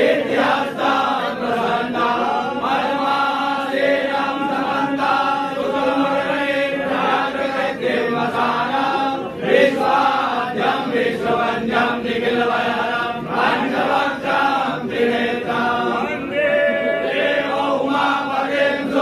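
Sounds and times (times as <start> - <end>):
men chanting in unison: 0.0 - 19.0.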